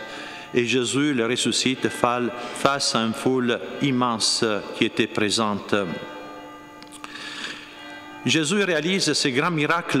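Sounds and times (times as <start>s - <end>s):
church bell ringing: 0.0s - 10.0s.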